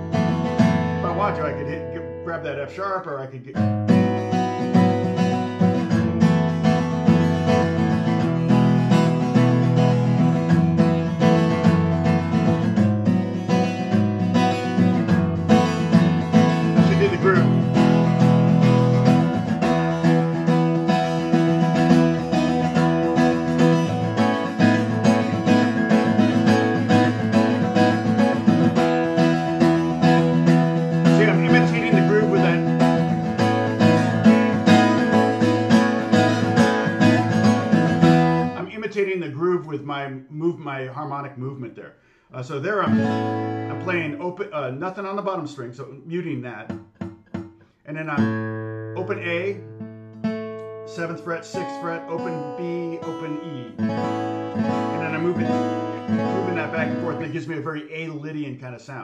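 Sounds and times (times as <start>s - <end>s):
acoustic guitar strumming: 0.0s - 58.7s.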